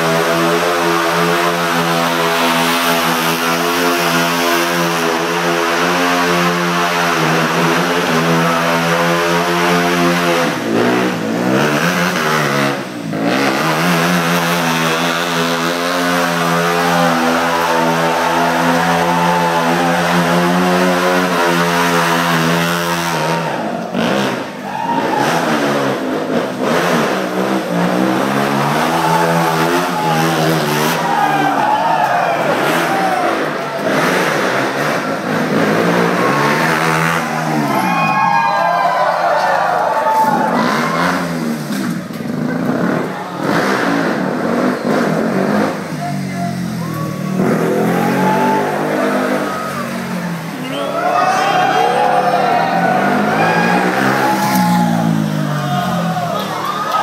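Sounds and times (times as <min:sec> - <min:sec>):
motorcycle engine revving: 0:00.0 - 0:24.6, 0:25.2 - 0:31.6, 0:32.4 - 0:37.9, 0:40.5 - 0:50.8, 0:52.1 - 0:57.0.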